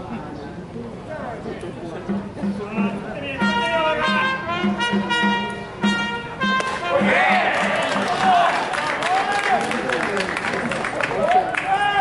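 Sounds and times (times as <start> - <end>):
steady drumbeat: 2.0 - 8.5
trumpet playing fanfare: 3.2 - 8.5
crowd shouting and cheering: 6.6 - 12.0.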